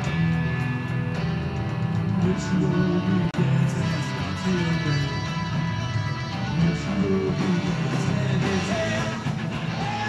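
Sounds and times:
bass guitar: 0:00.0 - 0:10.0
electric guitars strumming: 0:00.0 - 0:10.0.

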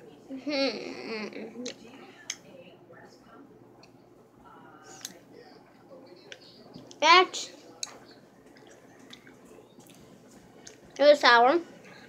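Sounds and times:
mouth clicks and smacks: 0:07.8 - 0:10.0.

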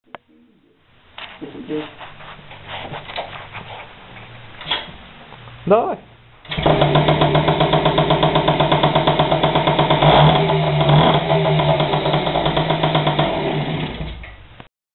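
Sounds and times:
moped engine starting and running: 0:06.4 - 0:14.4.

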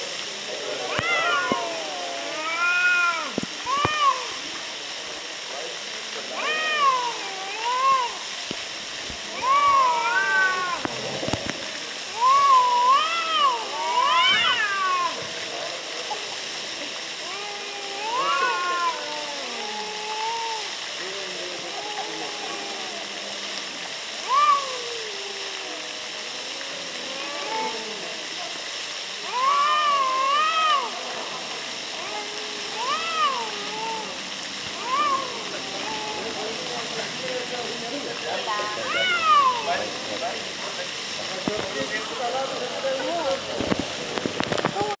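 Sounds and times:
cats yowling: 0:00.7 - 0:04.6, 0:06.2 - 0:08.3, 0:09.2 - 0:11.3, 0:12.1 - 0:15.4, 0:17.2 - 0:20.8, 0:21.6 - 0:23.4, 0:24.2 - 0:28.3, 0:29.2 - 0:36.8, 0:38.6 - 0:40.4.

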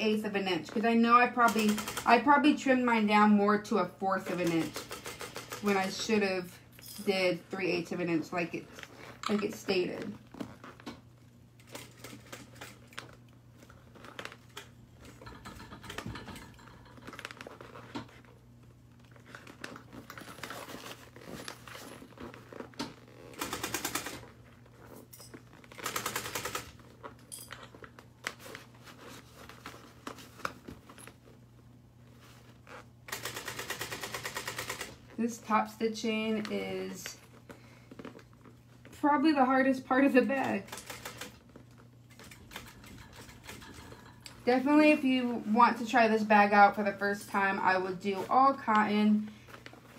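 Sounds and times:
fabric handling: 0:17.2 - 0:23.5.

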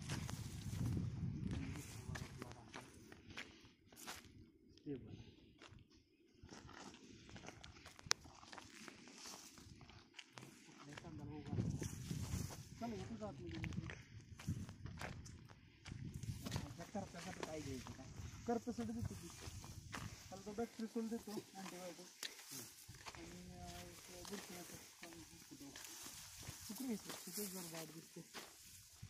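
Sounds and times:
footsteps on soil: 0:00.0 - 0:04.4, 0:06.4 - 0:29.0
rustling leaves: 0:20.3 - 0:29.0.

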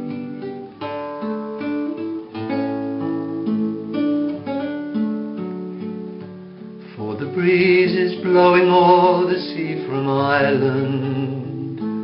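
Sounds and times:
acoustic guitar plucked notes: 0:00.0 - 0:12.0.

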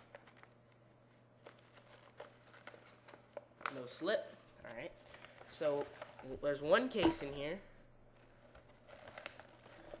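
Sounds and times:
plastic bag crinkling: 0:00.0 - 0:06.7, 0:08.1 - 0:10.0.

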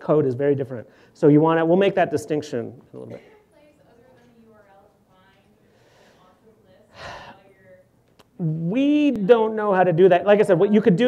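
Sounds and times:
breath close to microphone: 0:00.9 - 0:01.2, 0:05.7 - 0:07.4.

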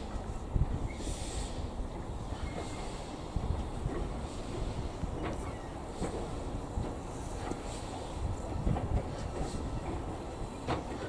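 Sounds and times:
steam locomotive exhaust and wheels rumble: 0:00.0 - 0:11.0.

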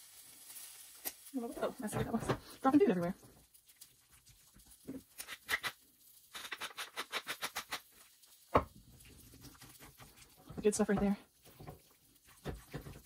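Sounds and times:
spatula stirring thick food in pan: 0:00.0 - 0:13.0.

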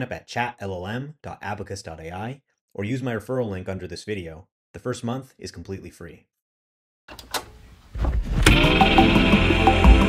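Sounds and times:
ambient background music: 0:08.4 - 0:10.0.

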